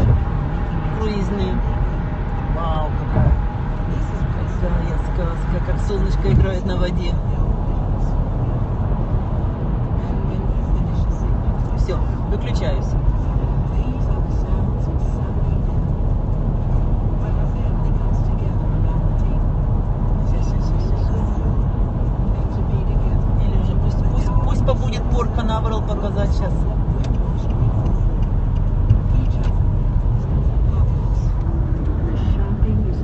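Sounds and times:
road and engine rumble in car: 0.0 - 33.0.

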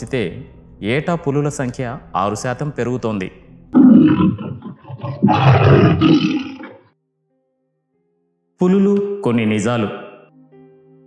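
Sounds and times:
tiger roaring: 3.8 - 6.8.

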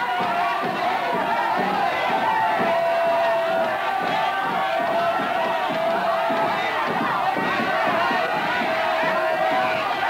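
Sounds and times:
crowd shouting together: 0.0 - 10.0.

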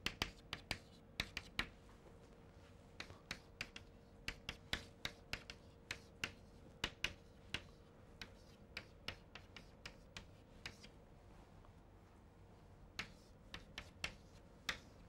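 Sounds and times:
chalk tapping on blackboard: 0.0 - 1.7, 3.0 - 10.9, 13.0 - 15.0.

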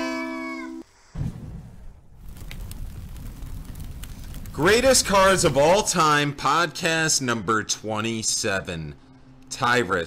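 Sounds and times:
low rumbling noise: 1.4 - 6.1.

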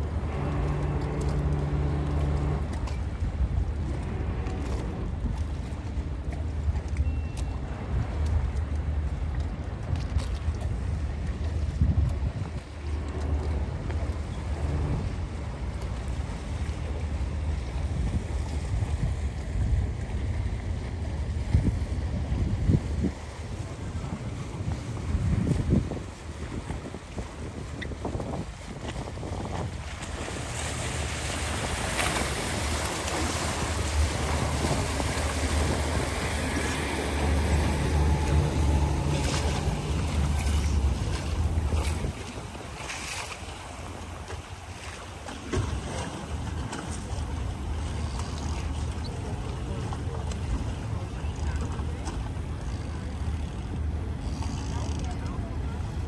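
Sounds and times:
outboard motor droning: 0.0 - 56.0
rushing water: 0.0 - 56.0
wind buffeting microphone: 7.7 - 44.6.

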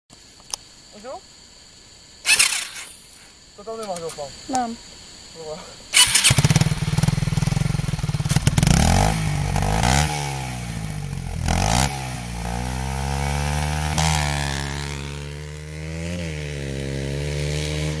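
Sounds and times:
dirt bike engine accelerating: 2.2 - 3.0, 5.9 - 18.0.

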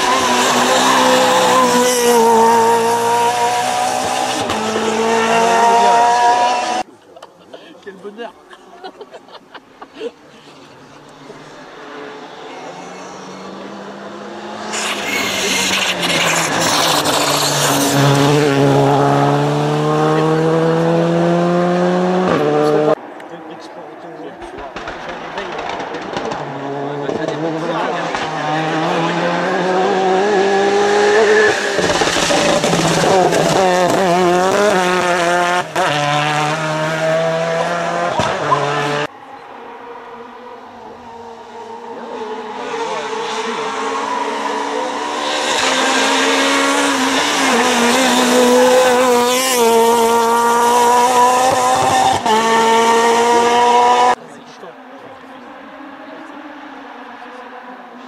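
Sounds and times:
rally car engine approaching: 0.0 - 6.9, 10.2 - 58.0
rally car engine at high revs: 0.0 - 6.9, 10.6 - 23.7, 24.4 - 58.0.

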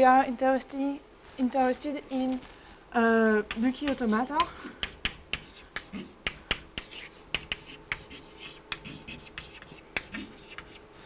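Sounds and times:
chalk tapping on blackboard: 3.4 - 10.8
chalk scratching: 3.5 - 10.9.

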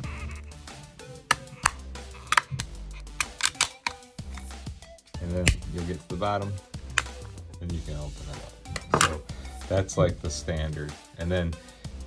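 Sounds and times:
background music: 0.0 - 12.0
plastic case clicking and snapping: 1.3 - 4.5, 6.9 - 7.2, 8.8 - 9.2.

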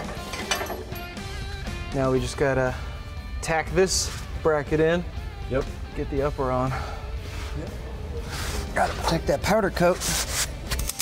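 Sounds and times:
metallic clicking and clinking: 0.0 - 1.2
background music: 0.0 - 11.0.

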